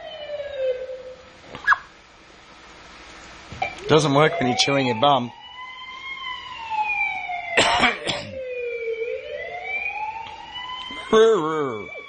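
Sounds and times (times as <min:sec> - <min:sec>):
emergency siren wailing: 0:00.0 - 0:01.4, 0:03.6 - 0:12.0
person coughing: 0:07.6 - 0:08.4, 0:11.1 - 0:11.8.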